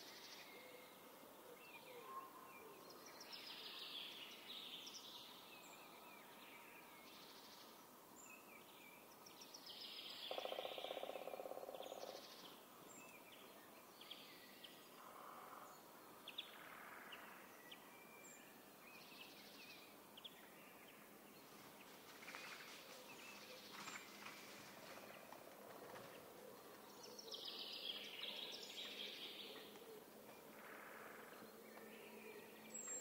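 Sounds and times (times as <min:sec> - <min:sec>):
birds chirping and trilling: 0:09.7 - 0:21.6, 0:22.3 - 0:33.0.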